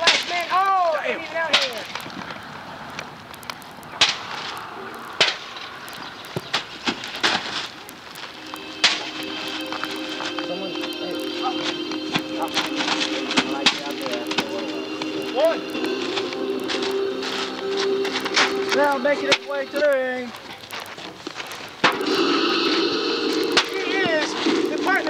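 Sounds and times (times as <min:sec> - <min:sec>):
music with held tones: 0:08.2 - 0:20.4, 0:21.9 - 0:25.0.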